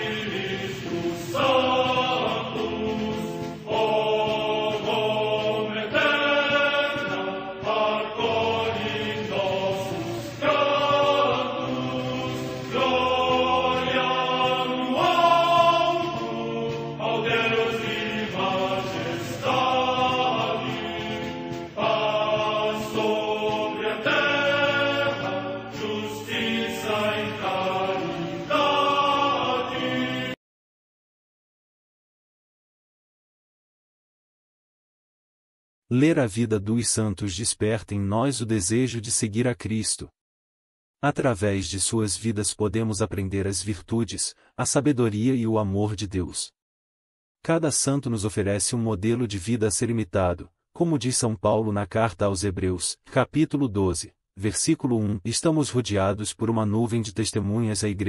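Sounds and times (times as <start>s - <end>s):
choir chanting: 0.0s - 30.4s.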